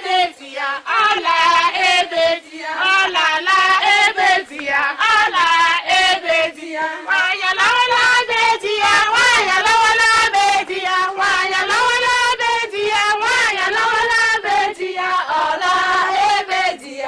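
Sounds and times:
women singing high melody: 0.0 - 17.0.

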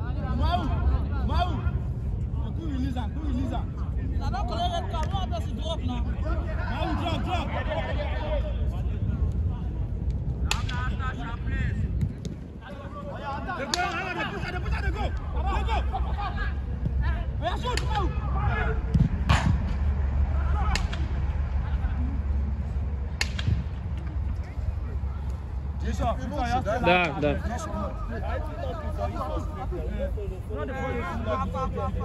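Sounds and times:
players shouting: 12.7 - 22.4, 24.4 - 32.0
low rumble: 14.3 - 32.0.

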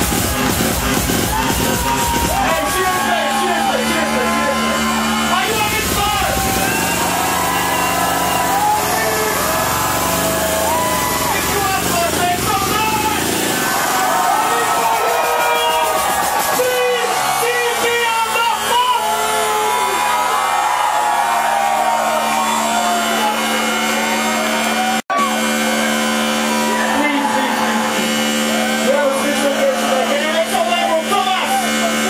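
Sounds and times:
club dance music: 0.0 - 32.0
crowd shouting and whooping: 0.0 - 32.0.

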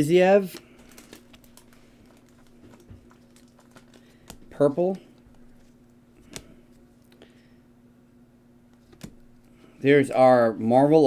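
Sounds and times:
faint steady hum: 0.0 - 11.0
trading cards flipped by hand: 0.5 - 4.5, 5.2 - 7.2, 8.7 - 9.5.

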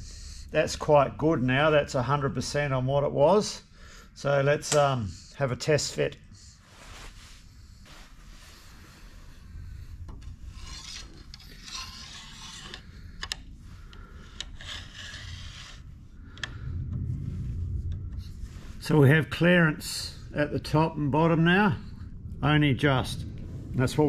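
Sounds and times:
metal strip scraping metal: 10.2 - 13.4, 14.2 - 15.9.

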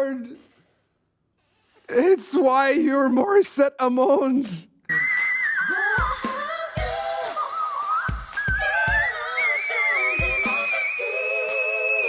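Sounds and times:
woman singing high whistle note: 4.9 - 12.0.

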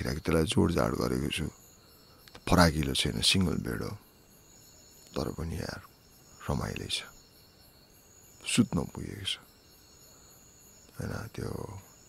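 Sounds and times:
man speaking: 0.0 - 1.5, 2.4 - 4.0, 5.2 - 5.8, 6.4 - 7.1, 8.4 - 9.4, 11.0 - 11.8
faint high-pitched hum: 0.0 - 12.0.

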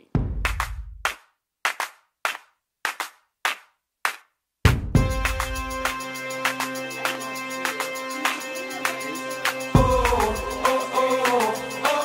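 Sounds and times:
sharp percussion hits: 4.7 - 12.0.

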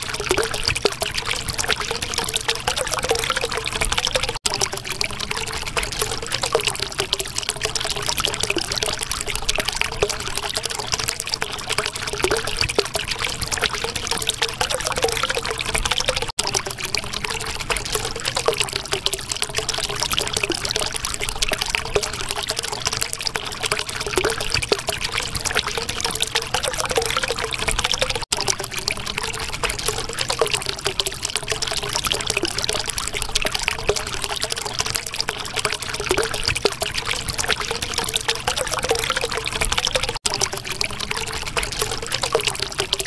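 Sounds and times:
water trickling and gurgling: 0.0 - 43.0.

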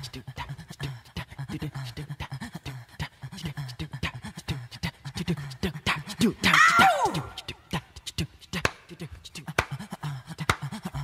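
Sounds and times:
vocal percussion: 0.0 - 11.0.

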